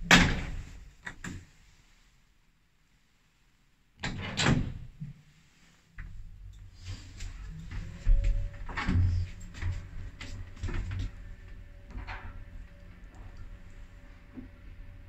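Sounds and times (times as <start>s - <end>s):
faint steady whine: 6.0s - 15.0s
lift low hum: 6.2s - 15.0s.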